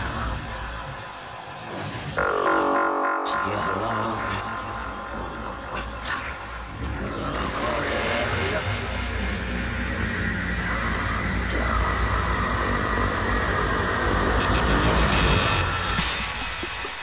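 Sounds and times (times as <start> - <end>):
noisy synthesized sound wash: 0.0 - 17.0
voice-like synth element: 0.0 - 17.0
deep rumble: 3.4 - 17.0.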